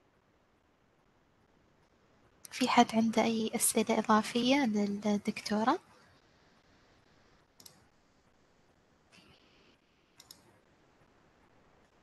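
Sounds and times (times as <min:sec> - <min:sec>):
faint click: 0:07.6 - 0:07.8, 0:10.2 - 0:10.5.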